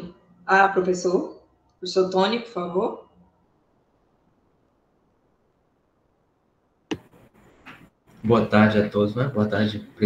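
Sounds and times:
microphone click: 6.9 - 7.9.

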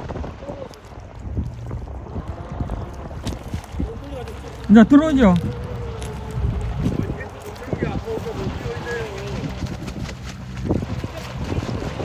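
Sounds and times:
rc boat running through water: 0.0 - 12.0
wind rumbling on microphone: 0.0 - 12.0
wake hissing: 1.6 - 7.8.

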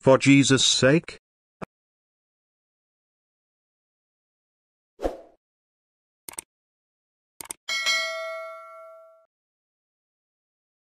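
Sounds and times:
notification bell ding: 7.7 - 9.3.

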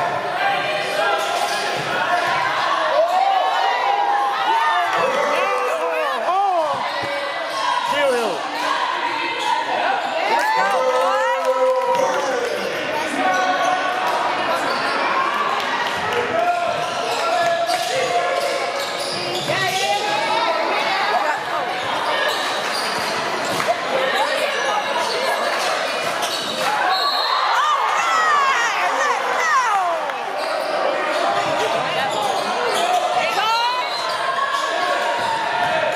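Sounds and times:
sneakers squeaking on floor: 13.1 - 15.2, 16.7 - 20.3, 21.4 - 27.5, 30.3 - 35.5.

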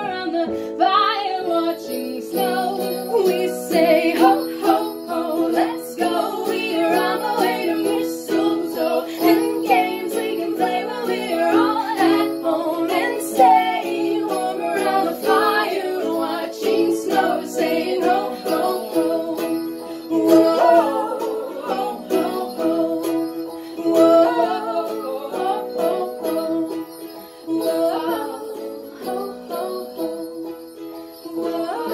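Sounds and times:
strummed ukulele: 0.0 - 31.9
women singing in harmony: 0.0 - 31.9
small bells shaking: 1.8 - 31.9.

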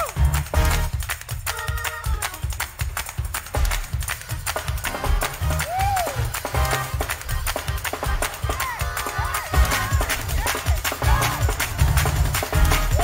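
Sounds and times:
bass notes: 0.0 - 1.0, 9.6 - 13.0
gospel band music: 0.0 - 13.0
quick drum beat: 0.0 - 13.0.

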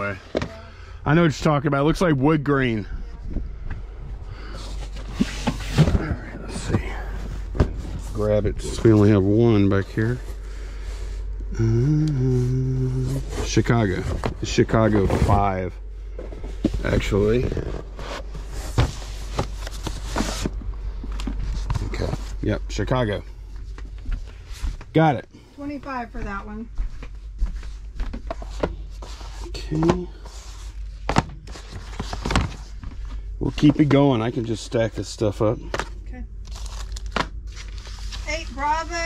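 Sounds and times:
low steady hum: 0.0 - 39.0
plastic crinkling: 36.4 - 38.4.

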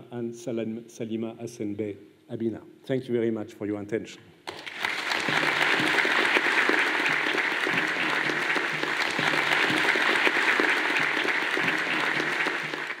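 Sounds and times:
audience applauding: 4.5 - 13.0.

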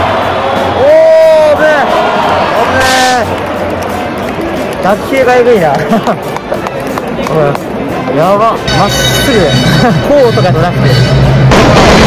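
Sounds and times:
music: 0.0 - 12.0
stadium crowd noise: 0.0 - 12.0.

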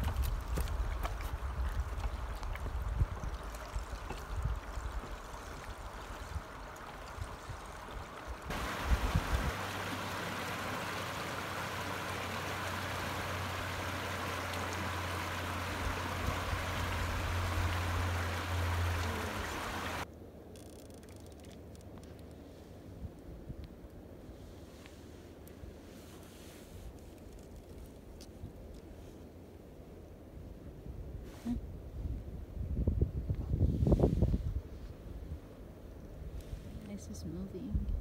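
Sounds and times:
wind buffeting microphone: 0.0 - 10.3, 30.8 - 35.5
river water rushing past rocks: 7.9 - 20.0.

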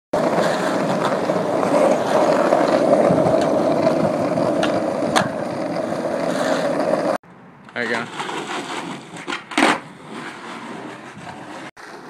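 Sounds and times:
skateboard wheels rolling on pavement: 0.2 - 12.0.

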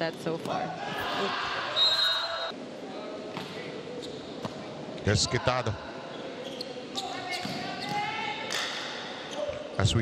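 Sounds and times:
players and crowd shouting: 0.7 - 2.6
referee's whistle: 1.8 - 2.5
ball bouncing on court floor: 7.3 - 8.8.

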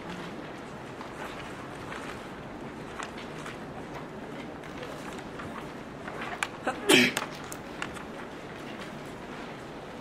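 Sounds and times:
lecture room noise: 0.0 - 10.0.

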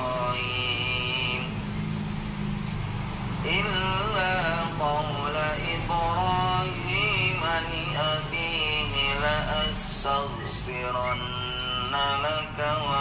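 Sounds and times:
man chanting melodically: 0.0 - 1.8, 3.4 - 13.0.

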